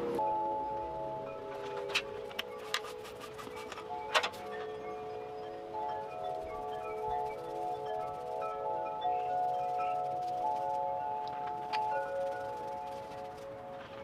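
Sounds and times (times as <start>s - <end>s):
chime-like ringing tones: 0.0s - 14.0s.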